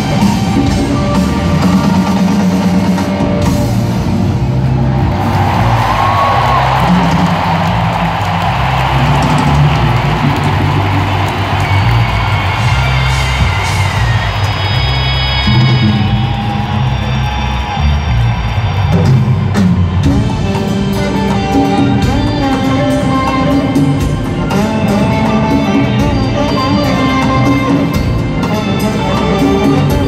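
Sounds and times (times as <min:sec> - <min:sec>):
crowd cheering: 0:00.0 - 0:30.0
live band playing loud: 0:00.0 - 0:30.0.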